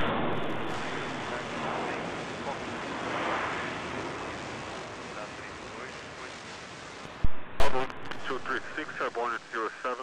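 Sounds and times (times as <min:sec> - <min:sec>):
jet engines roaring: 0:00.0 - 0:10.0
air traffic control radio speech: 0:00.8 - 0:02.9, 0:05.0 - 0:06.6, 0:07.6 - 0:10.0
radio click: 0:07.6 - 0:09.4.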